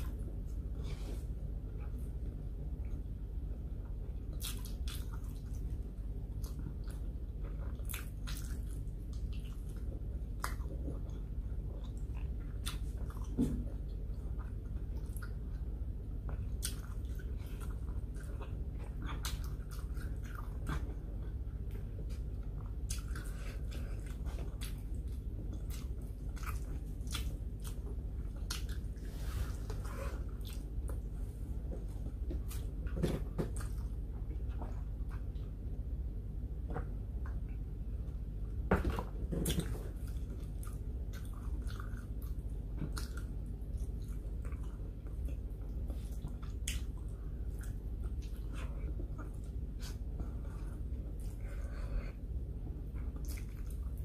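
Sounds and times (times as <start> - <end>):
steady low hum: 0.0 - 54.0
person chewing food: 3.8 - 35.7, 38.8 - 54.0.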